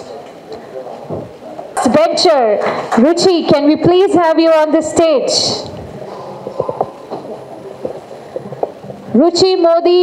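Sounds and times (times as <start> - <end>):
crowded hall noise: 0.0 - 10.0.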